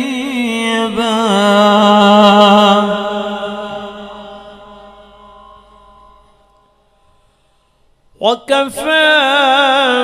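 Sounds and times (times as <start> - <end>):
man reciting melodically with echo: 0.0 - 10.0.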